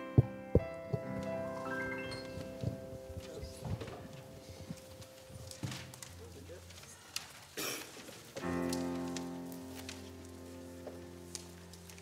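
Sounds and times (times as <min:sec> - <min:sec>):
soft instrumental music: 0:00.0 - 0:06.7, 0:08.3 - 0:12.0.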